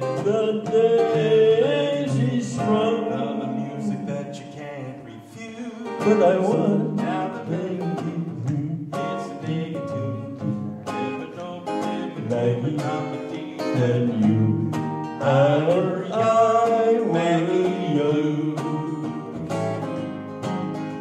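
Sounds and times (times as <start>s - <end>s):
man singing: 0.0s - 19.4s
acoustic guitar ballad: 0.0s - 21.0s.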